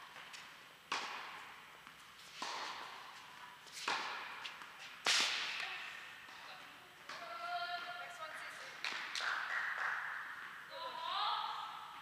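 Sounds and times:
tennis ball struck by racket: 0.1s - 6.0s.

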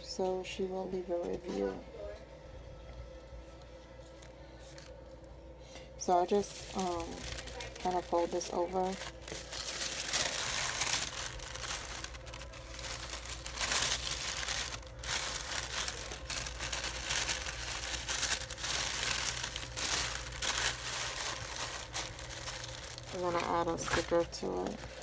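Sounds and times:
tissue paper crinkling: 6.1s - 25.0s.

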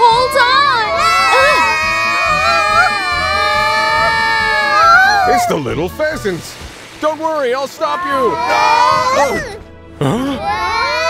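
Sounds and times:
cartoon children yelling: 0.0s - 5.6s, 7.9s - 9.6s, 10.4s - 11.0s.

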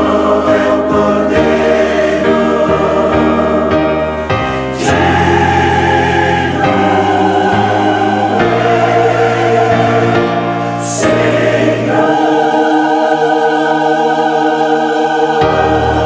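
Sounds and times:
church choir singing chords: 0.0s - 16.0s.

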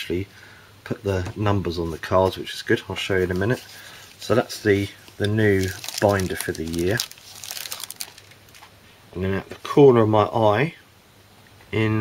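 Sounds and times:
plastic packaging crinkling: 3.3s - 8.7s.

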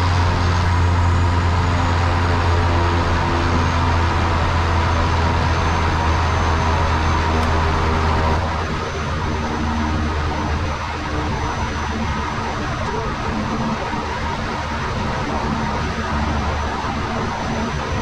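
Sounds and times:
faint high engine whine: 0.0s - 18.0s
turboprop engine running: 0.0s - 18.0s.

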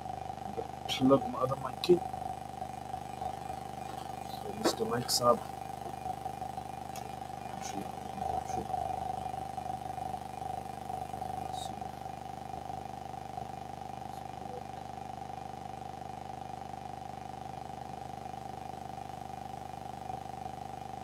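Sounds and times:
constant mid-pitched tone: 0.0s - 21.0s
electrical hum and hiss: 0.0s - 21.0s.

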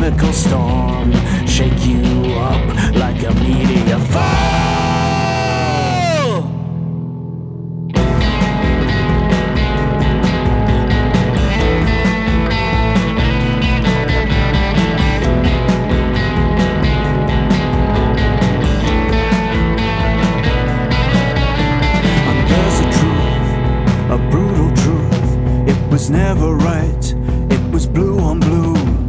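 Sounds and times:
instrumental rock band playing: 0.0s - 29.0s.

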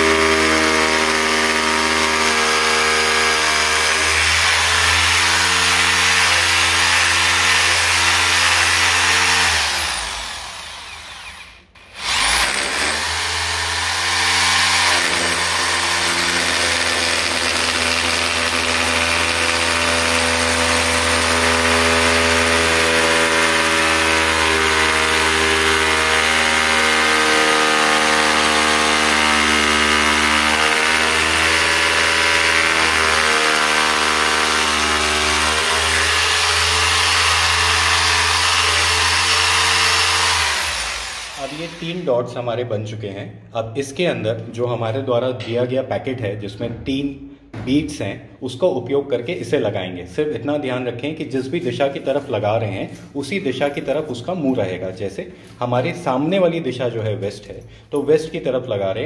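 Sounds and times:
electric drill boring through tile: 0.0s - 42.1s.

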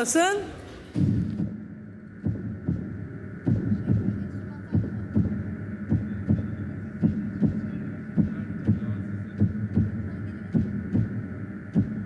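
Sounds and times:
steady hum: 0.0s - 12.0s
low heartbeat-like thump: 0.9s - 12.0s.

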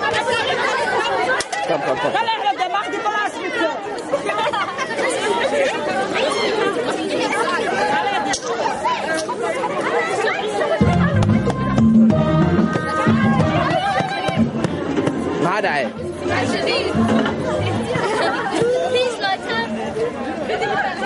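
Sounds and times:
crowd talking: 0.0s - 21.0s.

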